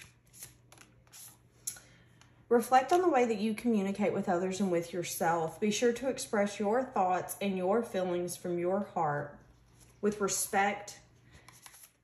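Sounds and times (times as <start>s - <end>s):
cards shuffling: 0.0s - 1.8s, 11.3s - 12.0s.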